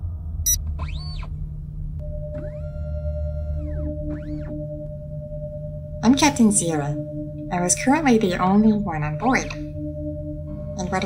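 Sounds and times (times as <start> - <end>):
low steady hum: 0.0 - 11.0
electronic tones sweeping: 2.0 - 11.0
short pulsed tones: 2.0 - 11.0
steady beep-like tone: 2.0 - 11.0.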